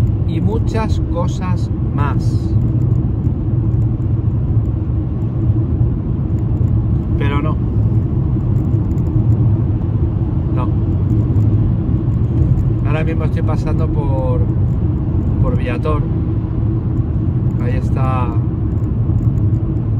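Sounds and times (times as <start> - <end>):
car road and engine rumble: 0.0 - 19.9.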